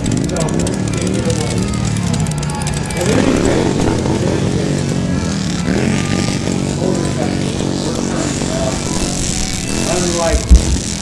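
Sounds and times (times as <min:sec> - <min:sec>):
indistinct voices talking: 0:00.0 - 0:11.0
motorcycle engine running: 0:00.0 - 0:11.0.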